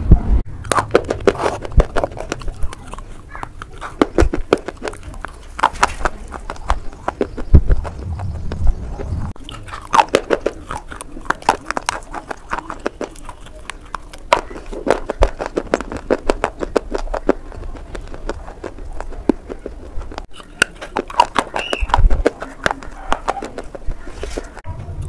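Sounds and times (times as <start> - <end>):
person biting and chewing clay: 0.5 - 24.7
low rumble: 6.6 - 9.7.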